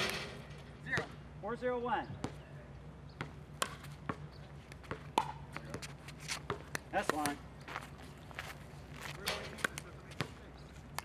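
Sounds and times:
ball bouncing on hard court: 3.2 - 7.4.

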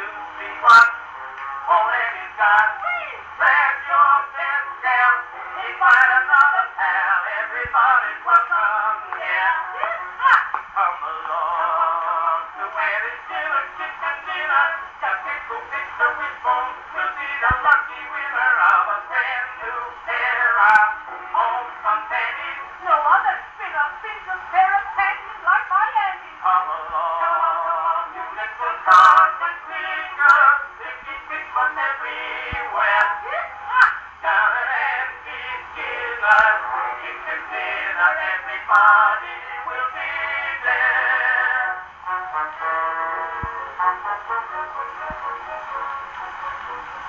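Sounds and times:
man singing on old record: 0.0 - 45.4.

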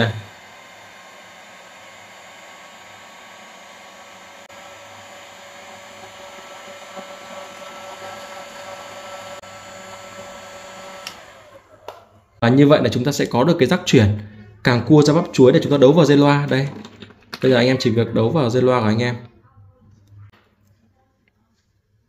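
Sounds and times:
heat gun blowing hot air: 0.0 - 11.9.

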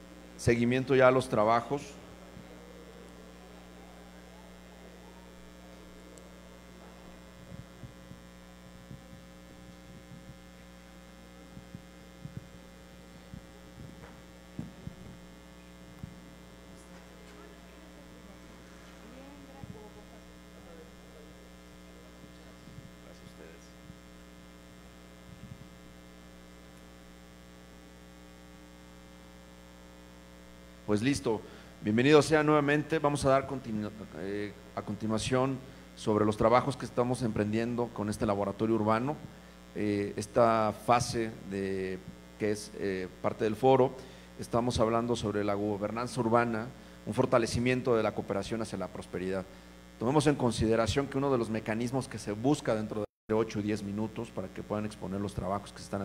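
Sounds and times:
electrical mains hum: 0.0 - 56.0.

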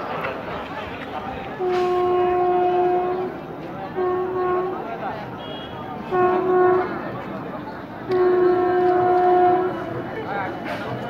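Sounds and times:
train horn blasts: 1.6 - 7.2, 8.0 - 10.1.

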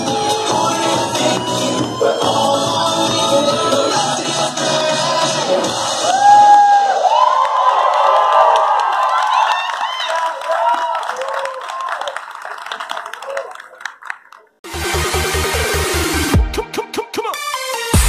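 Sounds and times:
pop backing track: 0.0 - 6.2
electronic dance track: 0.0 - 6.4, 14.7 - 18.0
audience cheering and whooping: 5.9 - 13.8.

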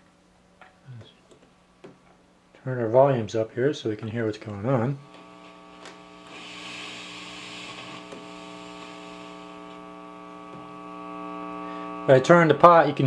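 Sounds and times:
amplifier mains hum: 0.0 - 13.0
amplifier hiss: 2.6 - 13.0.

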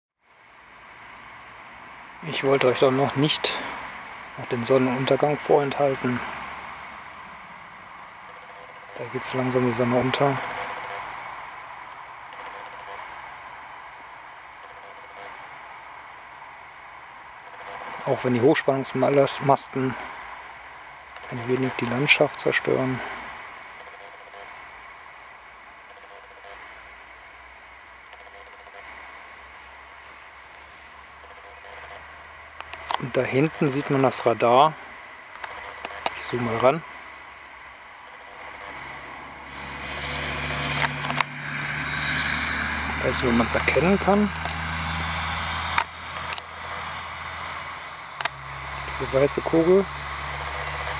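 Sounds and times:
even outdoor hiss: 0.2 - 50.9
vehicle engine droning: 0.3 - 50.9
faint high-pitched blips: 8.2 - 11.1, 12.3 - 13.2, 14.6 - 15.5, 17.4 - 18.2, 23.8 - 24.7, 25.8 - 26.7, 28.0 - 28.9, 30.5 - 32.1, 35.4 - 36.3, 38.0 - 38.9.

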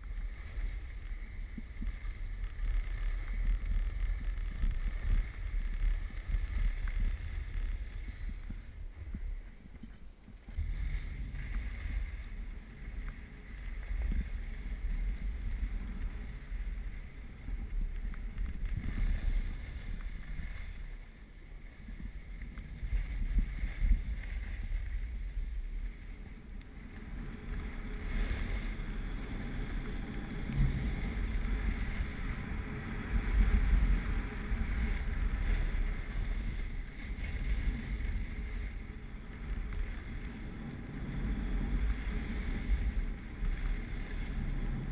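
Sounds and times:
skis sliding over snow: 0.0 - 44.9
wind buffeting microphone: 0.0 - 44.9.

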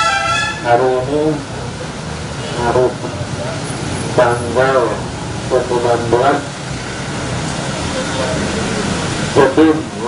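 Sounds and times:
road traffic noise: 0.0 - 10.0
man speaking through microphone: 0.6 - 1.8, 2.4 - 6.6, 9.3 - 10.0.

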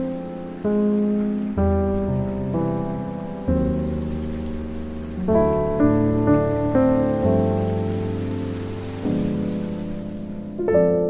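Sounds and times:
steady rain-like hiss: 0.0 - 11.0.

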